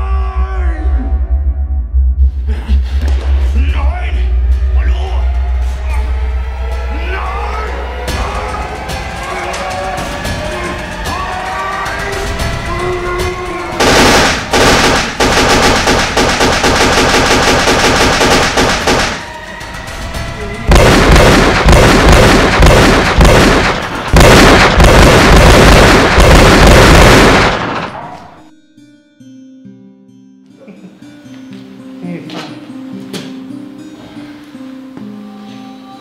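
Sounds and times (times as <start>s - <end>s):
background music: 0.0s - 36.0s
rapid gunfire: 13.8s - 19.4s, 20.7s - 28.0s.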